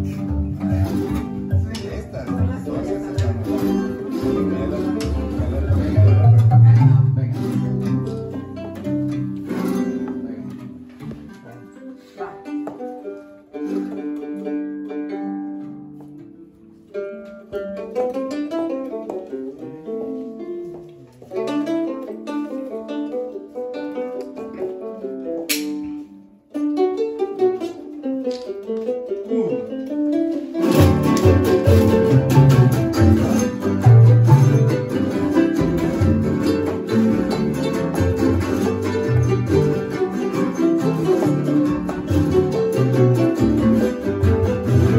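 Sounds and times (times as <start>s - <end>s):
group of guitars playing: 0.0s - 44.9s
plucked string instrument melody: 0.0s - 44.9s.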